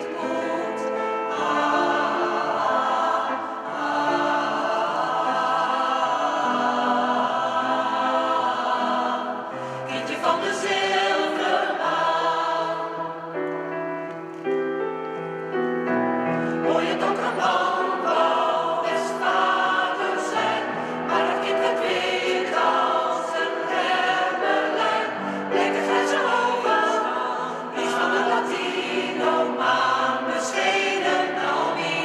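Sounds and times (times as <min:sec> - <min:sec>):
mixed choir singing: 0:00.0 - 0:13.5, 0:16.3 - 0:32.0.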